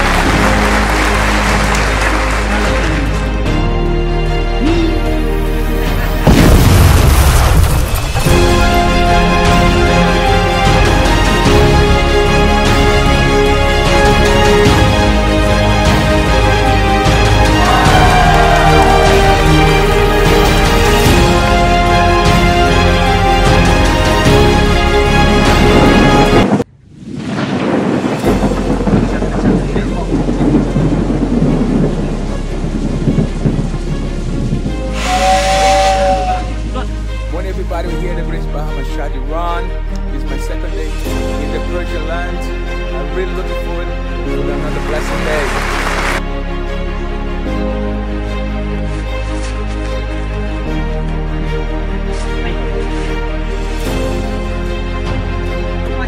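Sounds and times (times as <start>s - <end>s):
soundtrack melody: 0.0s - 6.9s, 8.0s - 26.6s, 28.2s - 56.0s
music: 0.0s - 26.7s, 28.1s - 56.0s
rain: 0.0s - 37.8s, 44.6s - 56.0s
rumbling thunder: 6.2s - 9.0s, 25.5s - 35.0s
deep cinematic boom: 6.2s - 9.2s.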